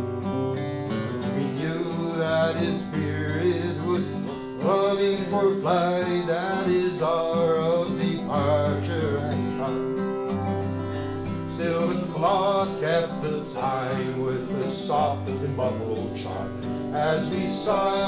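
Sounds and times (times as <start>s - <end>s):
acoustic guitar: 0.0s - 18.0s
man singing: 1.1s - 10.2s, 11.4s - 18.0s.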